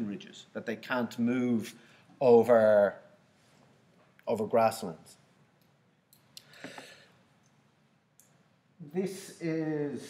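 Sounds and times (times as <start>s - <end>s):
man speaking: 0.0s - 3.2s, 4.2s - 5.2s, 8.8s - 10.0s
soft breath: 6.4s - 7.3s.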